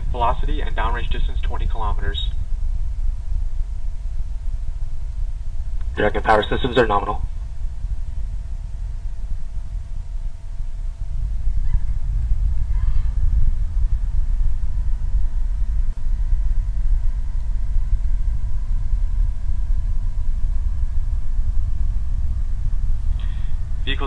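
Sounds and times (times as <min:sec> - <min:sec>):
rocket engines rumbling: 0:00.0 - 0:24.0.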